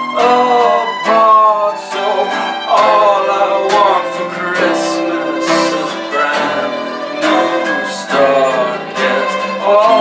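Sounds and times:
fiddle: 0.0 - 10.0
strummed acoustic guitar: 0.0 - 10.0.

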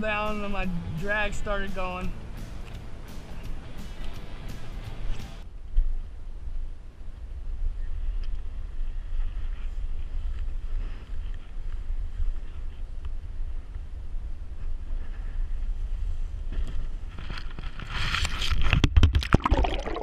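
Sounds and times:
wind rumbling on microphone: 0.0 - 19.2.

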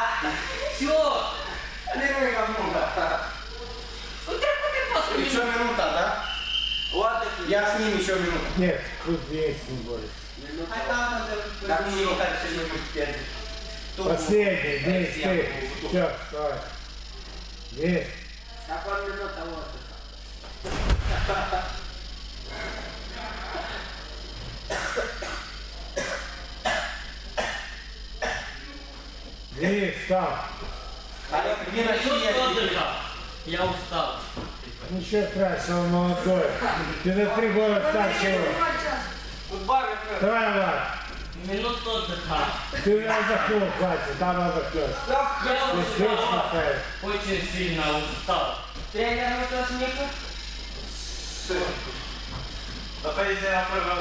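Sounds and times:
person coughing: 24.7 - 28.7.

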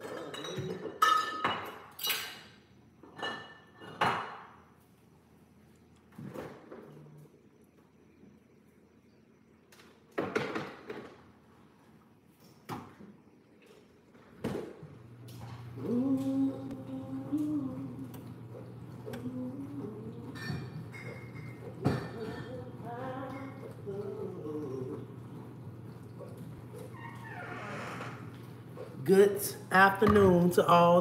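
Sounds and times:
appliance humming: 2.5 - 31.0
person humming: 15.7 - 20.4, 22.2 - 25.2.

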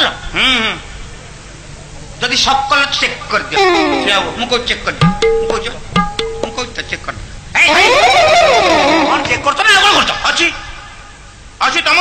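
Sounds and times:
person wailing: 3.6 - 4.4.

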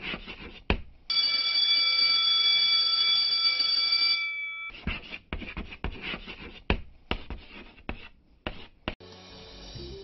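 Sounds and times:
chalk scratching on blackboard: 0.0 - 0.8, 4.7 - 9.0
electric school bell ringing: 1.1 - 4.7.

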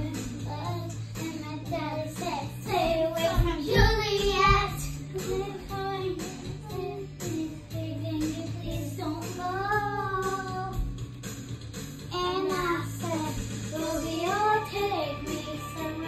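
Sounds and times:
girl singing: 0.0 - 10.9, 12.1 - 16.0
karaoke backing track: 0.0 - 16.0.

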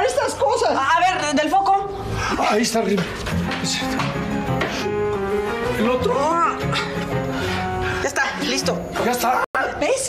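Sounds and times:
background music with bass notes: 2.7 - 9.4.

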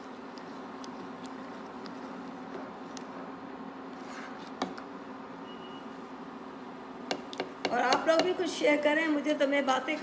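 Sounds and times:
faint high beep: 5.4 - 6.0
spatula tapping pot: 7.1 - 8.4.

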